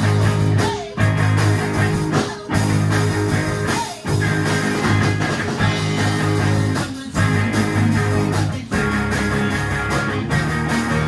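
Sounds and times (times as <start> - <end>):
bass guitar: 0.0 - 11.0
drums: 0.0 - 11.0
electric guitar: 0.0 - 11.0.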